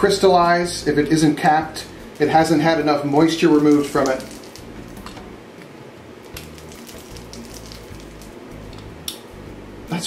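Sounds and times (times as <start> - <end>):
uncapping roller crackling on wax: 2.1 - 5.2, 6.2 - 8.9.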